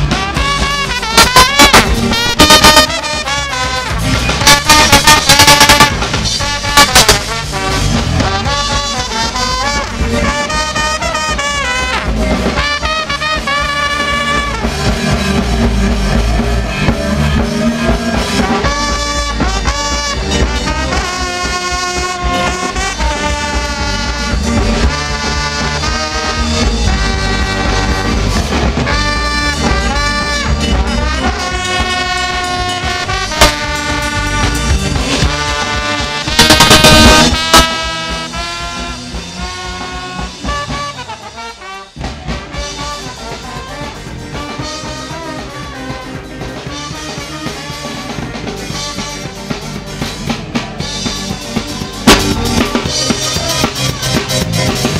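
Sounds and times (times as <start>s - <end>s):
live ska band playing: 0.0s - 54.9s
trombone-led horn section: 0.0s - 54.9s
loud burst of noise: 36.3s - 38.1s.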